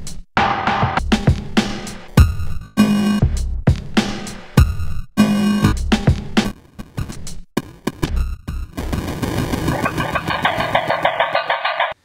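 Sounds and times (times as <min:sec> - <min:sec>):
glitchy stuttering drum loop: 0:00.5 - 0:12.0.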